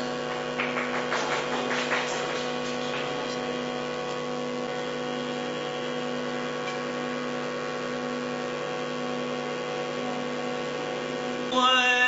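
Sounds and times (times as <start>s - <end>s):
steady instrumental drone: 0.0s - 6.6s.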